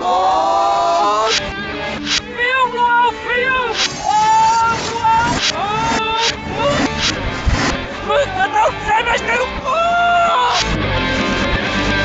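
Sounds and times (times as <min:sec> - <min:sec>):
short hissing bursts: 0:01.2 - 0:02.4, 0:03.7 - 0:07.8.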